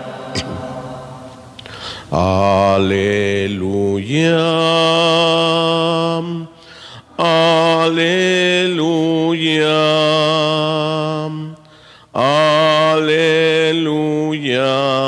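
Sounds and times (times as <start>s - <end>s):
man singing a hymn: 1.9s - 15.0s.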